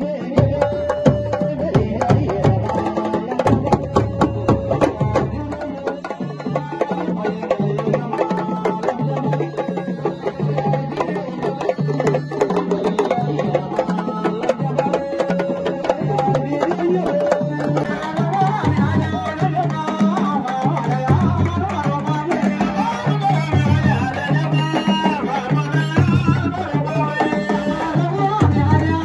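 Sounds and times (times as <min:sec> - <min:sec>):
drum ensemble playing fast rhythm: 0:00.0 - 0:29.0.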